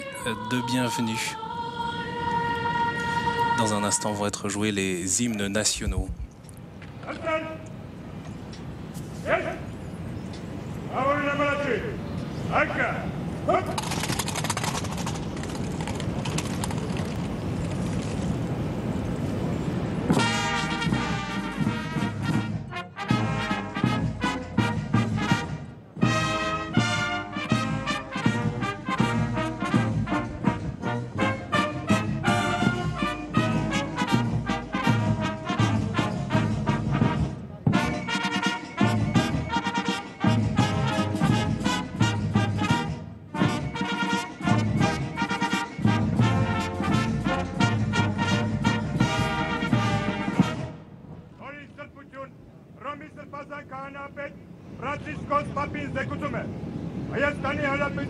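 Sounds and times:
brass band playing: 20.1 - 51.0.

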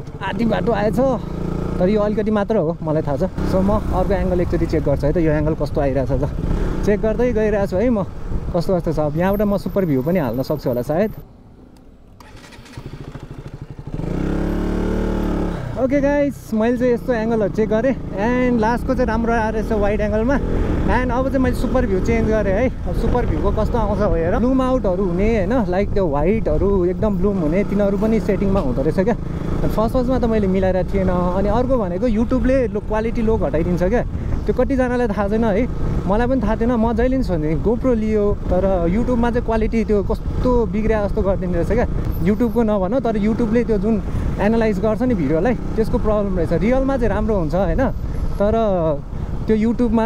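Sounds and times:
motorcycle engine running: 0.0 - 8.6, 12.1 - 47.9
wind and road noise: 0.0 - 50.0
man talking: 0.2 - 11.2, 15.7 - 50.0.

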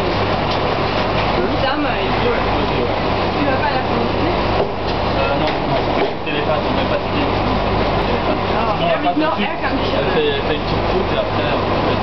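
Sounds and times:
low machine hum: 0.0 - 12.0
people talking indistinctly: 1.4 - 12.0.

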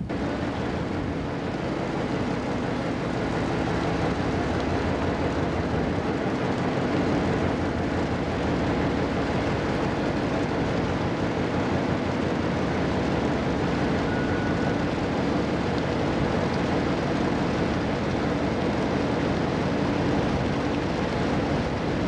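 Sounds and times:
ship engine running: 0.0 - 22.0
water rushing along hull: 0.0 - 22.0.

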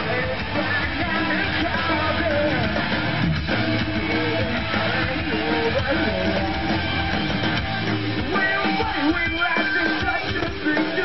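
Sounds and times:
drum kit: 0.0 - 11.0
electric guitars: 0.0 - 11.0.

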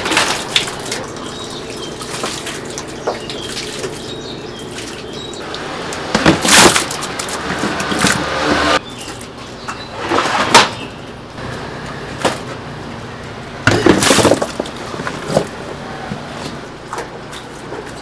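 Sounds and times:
steady background noise: 0.0 - 18.0.

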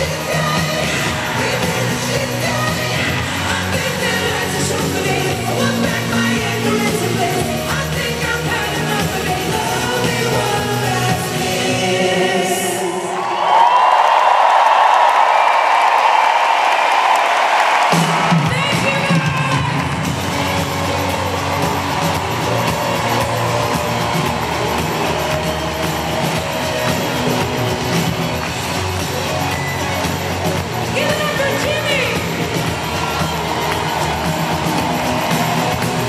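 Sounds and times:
female singer: 0.0 - 13.1
live pop-rock band: 0.0 - 13.1, 17.8 - 36.0
crowd cheering: 0.0 - 36.0.

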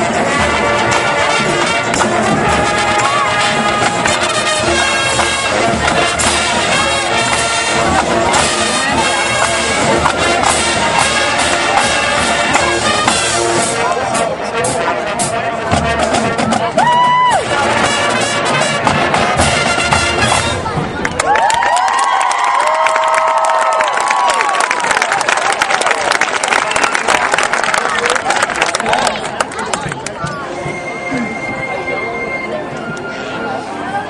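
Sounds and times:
marching band playing: 0.0 - 21.3, 26.1 - 34.0
crowd cheering and applauding: 0.9 - 13.1, 16.7 - 17.7, 20.6 - 30.2.

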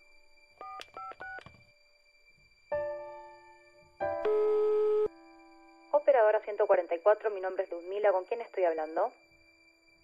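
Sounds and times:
phone keypad touch-tones: 0.6 - 1.5.

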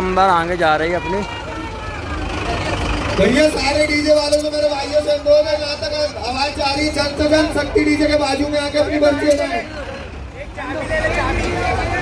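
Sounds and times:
crowd voices: 0.0 - 12.0
diesel truck engine running: 0.0 - 12.0.

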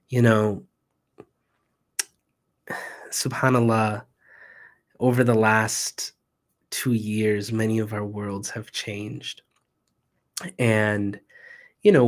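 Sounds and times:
man speaking close to microphone: 0.0 - 0.7, 2.7 - 4.1, 5.0 - 9.4, 10.4 - 12.0.

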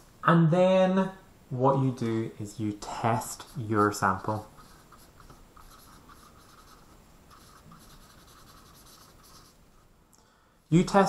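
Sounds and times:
pen scratching on whiteboard: 3.0 - 9.8.

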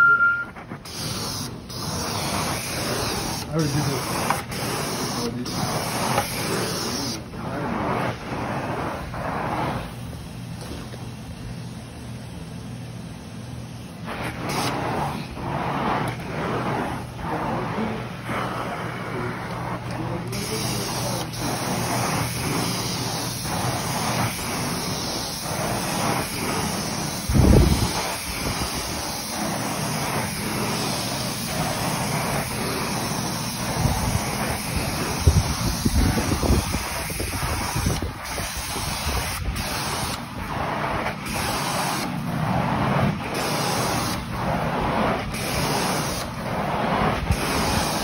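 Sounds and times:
light regular strokes: 0.0 - 11.0, 14.0 - 48.0
carpet cleaning machine running: 0.0 - 11.8, 13.6 - 48.0.

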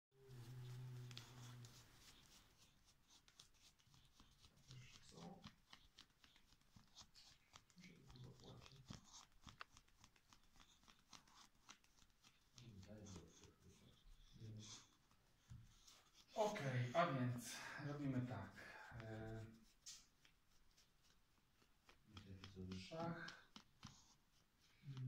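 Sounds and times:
dog scratching against a rug: 0.3 - 17.0, 18.3 - 25.0.

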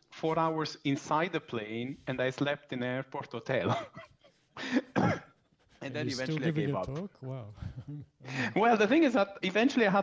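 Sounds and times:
person coughing: 4.7 - 5.4
person clearing throat: 4.9 - 5.3.

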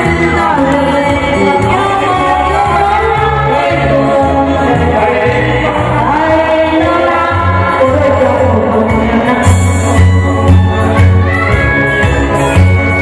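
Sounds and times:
woman singing into microphone: 0.0 - 11.6
amplified backing music: 0.0 - 13.0.

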